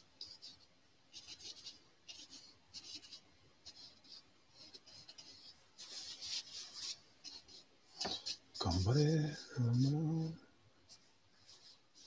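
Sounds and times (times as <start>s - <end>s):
paintbrush strokes on canvas: 0.0s - 12.0s.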